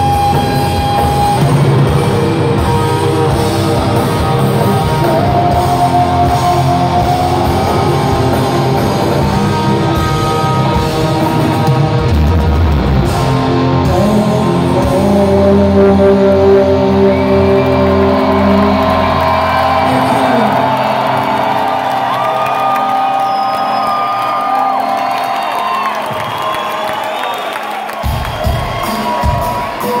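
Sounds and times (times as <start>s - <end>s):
crowd cheering and shouting: 0.0s - 30.0s.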